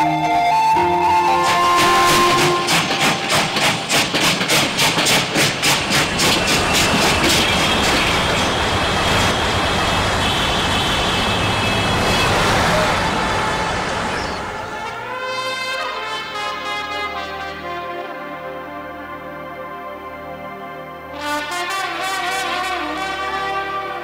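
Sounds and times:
train rushing with high squeal: 0:01.2 - 0:15.1
train wheels clickety-clack: 0:01.4 - 0:12.9.

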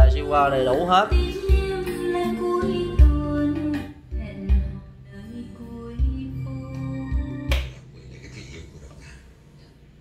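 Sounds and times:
music through loudspeakers: 0:00.0 - 0:08.0.

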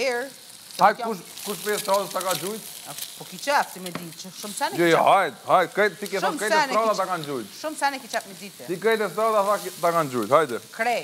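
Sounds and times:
food sizzling in a frying pan: 0:00.0 - 0:11.0
person talking: 0:04.6 - 0:05.3, 0:06.1 - 0:07.3.

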